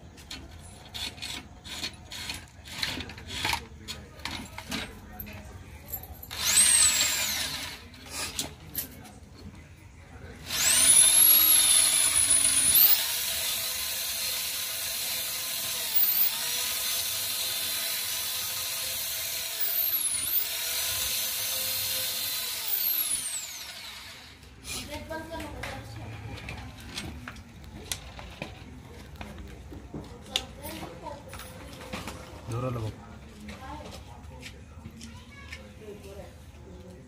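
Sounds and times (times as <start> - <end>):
electric drill whining: 6.3 - 7.9, 10.4 - 24.5.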